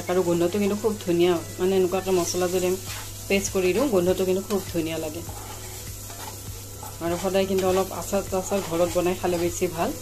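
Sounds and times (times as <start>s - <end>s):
chillies sizzling in oil: 0.0s - 10.0s
wooden spatula scraping a pan: 2.0s - 10.0s.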